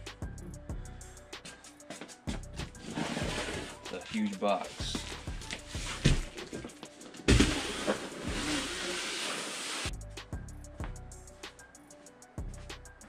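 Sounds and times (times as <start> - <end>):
background music with steady beat: 0.0 - 13.0
cardboard rustling scrape: 2.8 - 6.2, 7.3 - 9.9
knocks on cardboard box: 7.3 - 7.7.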